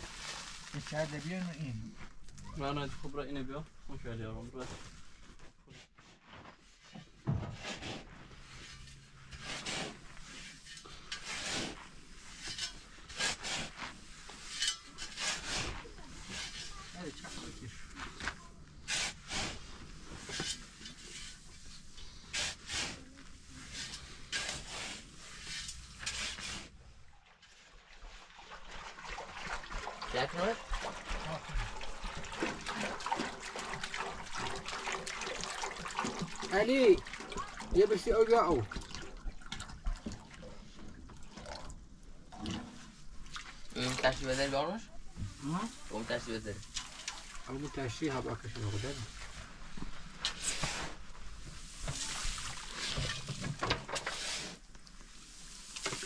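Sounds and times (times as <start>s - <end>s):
shovel scraping through straw and soil: 0.0s - 1.6s, 7.4s - 26.8s, 48.5s - 56.0s
water glugging from a jerrycan: 26.8s - 50.8s, 51.6s - 56.0s.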